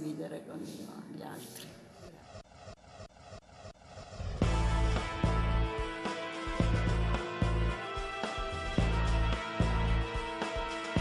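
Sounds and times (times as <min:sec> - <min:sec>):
pulsing electronic whoosh: 0:01.9 - 0:04.6.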